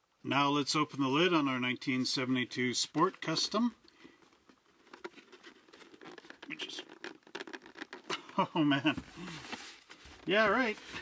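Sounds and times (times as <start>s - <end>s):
cardboard scraping and rustling: 2.9s - 8.1s, 8.8s - 11.0s.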